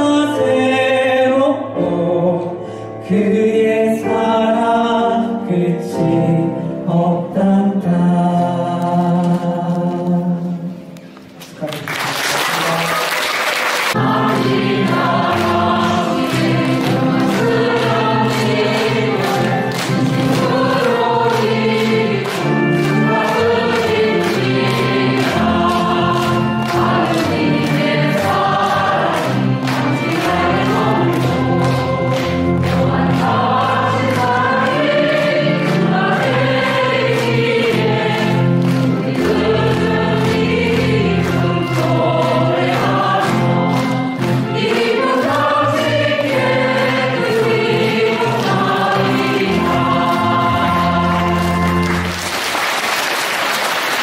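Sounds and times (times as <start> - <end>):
church choir singing a hymn: 0.0 - 10.7, 13.9 - 52.3.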